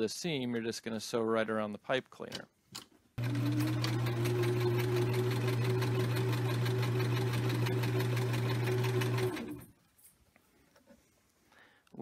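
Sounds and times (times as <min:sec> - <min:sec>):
sewing machine running: 0:03.2 - 0:09.7.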